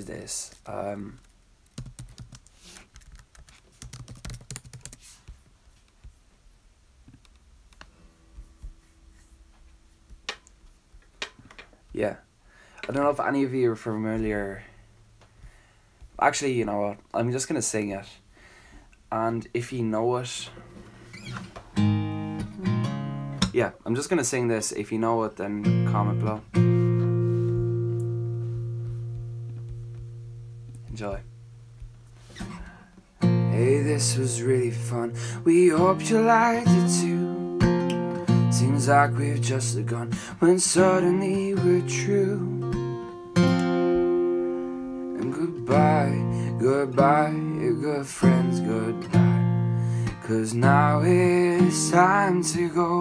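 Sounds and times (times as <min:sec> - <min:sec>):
typing on computer keyboard: 0:01.7 - 0:05.0
acoustic guitar chord ringing: 0:21.8 - 0:23.4, 0:25.6 - 0:31.7, 0:32.6 - 0:53.0.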